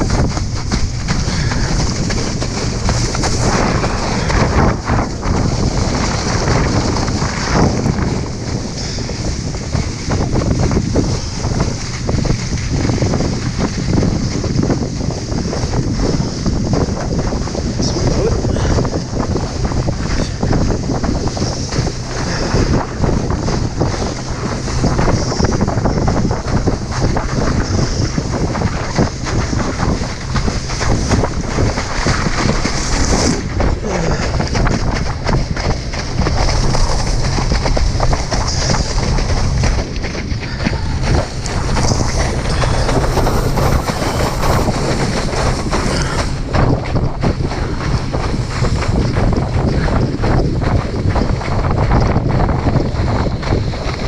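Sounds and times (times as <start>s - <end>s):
rushing water and spray: 0.0s - 54.0s
wind buffeting microphone: 0.0s - 54.0s.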